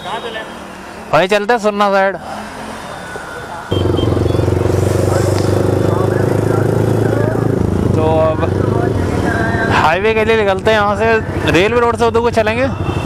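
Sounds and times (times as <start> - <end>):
motorcycle engine running: 3.7 - 13.0.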